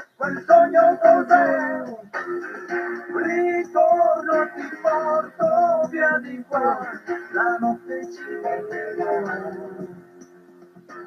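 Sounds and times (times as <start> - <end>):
person singing: 0.0 - 2.3, 3.0 - 10.2
backing music: 0.0 - 11.0.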